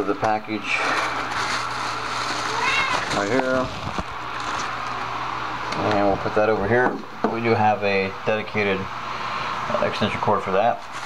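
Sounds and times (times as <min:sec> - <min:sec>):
bubble wrap rustling: 0:00.6 - 0:05.1, 0:10.8 - 0:11.0.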